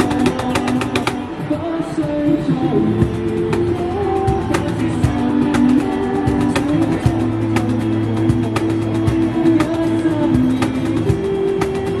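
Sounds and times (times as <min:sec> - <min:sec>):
guitar playing: 0:00.0 - 0:12.0.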